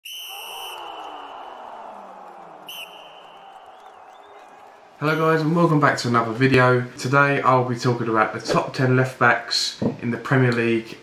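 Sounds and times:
referee whistle blasts: 0:00.0 - 0:01.9, 0:02.6 - 0:05.4.

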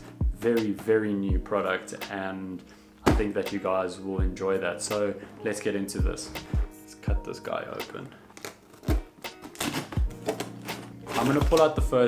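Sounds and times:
soft background music: 0:00.0 - 0:12.0
knife slitting packing tape: 0:08.3 - 0:11.7
cardboard box rustling open: 0:08.3 - 0:11.8.

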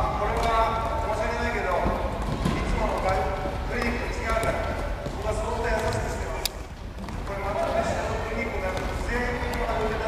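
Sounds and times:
tennis balls bouncing: 0:00.1 - 0:10.0.

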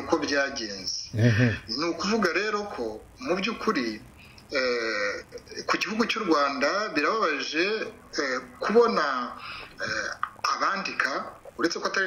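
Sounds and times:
person talking: 0:01.1 - 0:12.0.

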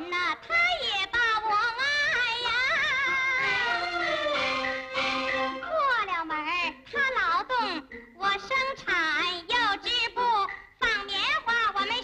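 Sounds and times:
instrumental accompaniment: 0:02.4 - 0:11.2.

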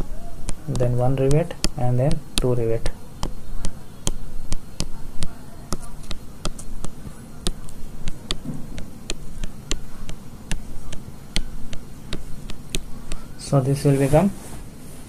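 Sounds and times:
stylus tapping touchscreen: 0:00.0 - 0:14.3.

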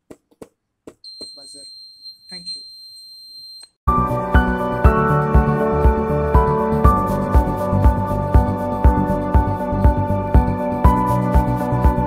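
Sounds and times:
high-pitched buzzer beep: 0:01.0 - 0:03.7.

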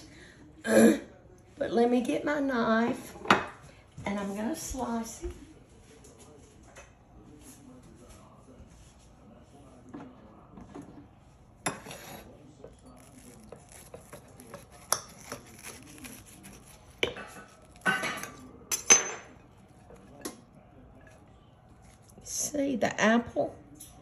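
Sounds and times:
knife scraping ceramic plate: 0:11.7 - 0:18.4.

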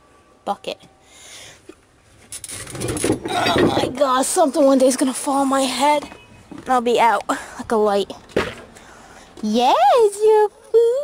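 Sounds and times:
items clattering and scraping: 0:02.1 - 0:06.8.

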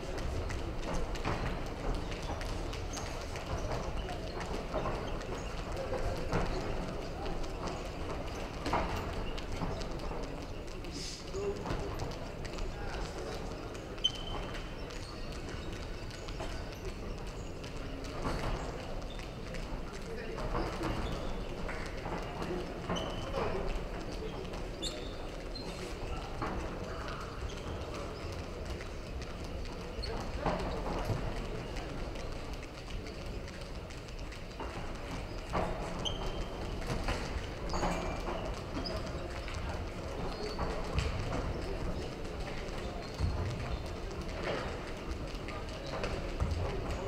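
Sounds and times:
hall hubbub: 0:00.0 - 0:47.0.

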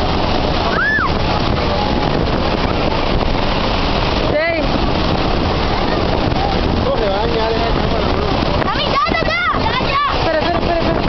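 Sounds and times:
waterfall roaring: 0:00.0 - 0:11.0
wind buffeting microphone: 0:00.0 - 0:11.0.

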